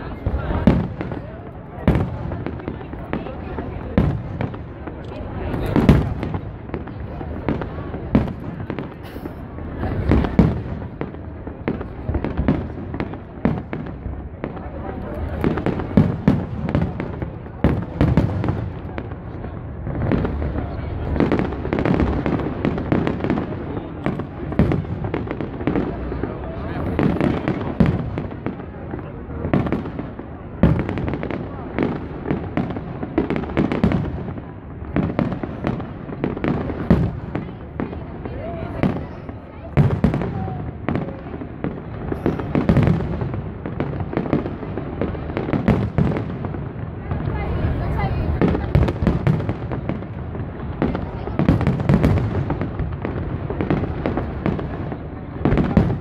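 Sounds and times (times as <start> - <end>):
crowd talking: 0.0 - 56.0.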